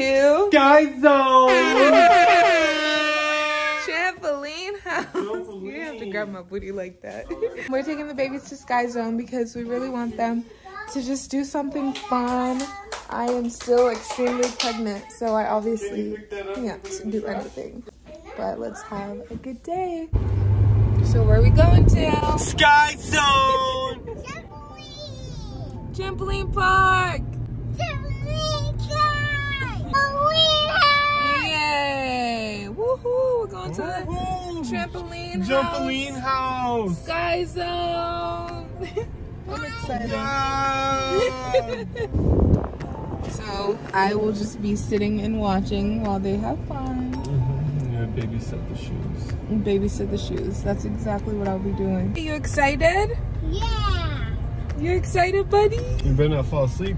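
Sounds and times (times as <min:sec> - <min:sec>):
people shouting drawn-out: 0:01.6 - 0:03.6
car rumbling on road: 0:20.1 - 0:56.9
child sing-song calling: 0:27.8 - 0:31.5.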